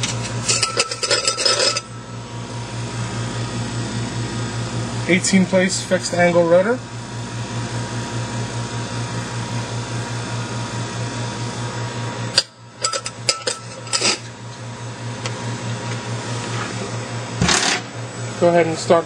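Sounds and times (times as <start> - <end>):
centrifuge humming: 0.0 - 19.0.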